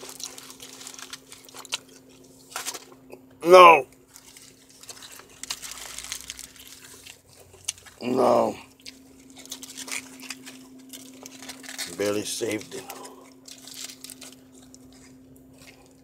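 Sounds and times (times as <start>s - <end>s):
foil and paper wrappers crinkling: 0.0s - 3.1s, 3.9s - 16.0s
steady low hum: 0.0s - 16.0s.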